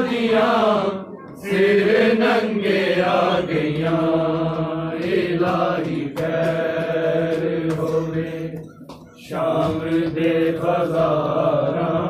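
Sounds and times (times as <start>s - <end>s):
men chanting in unison: 0.0s - 12.0s
faint regular strikes: 3.0s - 11.9s.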